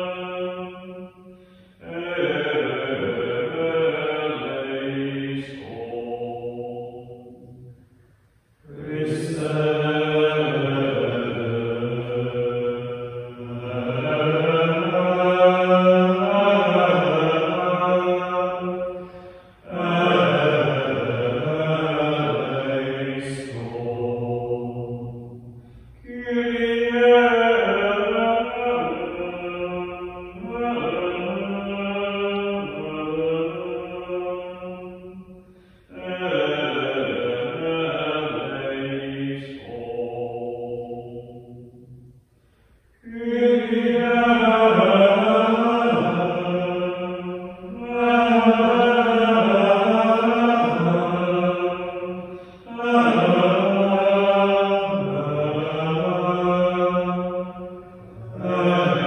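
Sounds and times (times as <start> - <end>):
men singing liturgical chant: 0.0 - 1.1, 1.8 - 7.4, 8.6 - 35.3, 35.9 - 41.7, 43.0 - 59.0.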